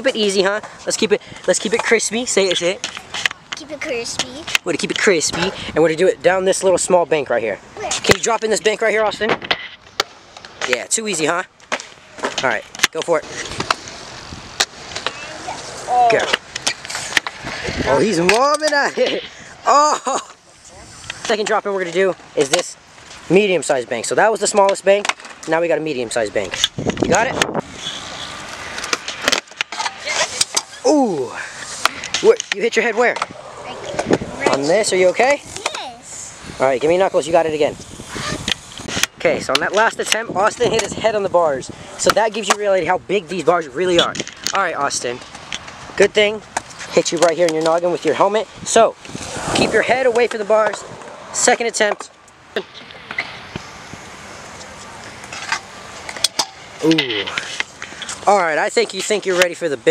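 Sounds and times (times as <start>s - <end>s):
scooter wheels and deck clacking: 9.2s - 19.2s, 24.3s - 30.8s, 42.0s - 42.9s, 49.0s - 59.9s
scooter rolling on concrete: 9.7s - 19.2s, 20.3s - 41.3s, 41.9s - 59.9s.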